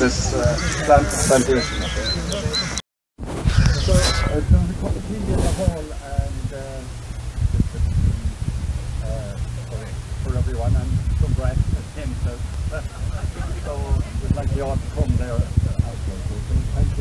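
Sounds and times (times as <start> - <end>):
people talking outdoors: 0.0 - 17.0
low steady hum: 3.7 - 17.0.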